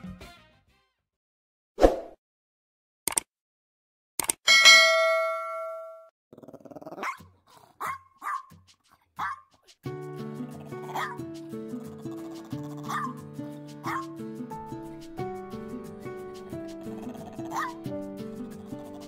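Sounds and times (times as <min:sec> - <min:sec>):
quick clicks: 0:03.1 - 0:03.3, 0:04.2 - 0:04.4
bell-like notification chime: 0:04.5 - 0:06.1
small dog barking: 0:06.9 - 0:07.2, 0:07.8 - 0:08.5, 0:09.2 - 0:09.5, 0:10.4 - 0:11.2, 0:11.8 - 0:13.2, 0:13.8 - 0:14.1, 0:16.7 - 0:17.9
background music with steady beat: 0:13.4 - 0:16.8.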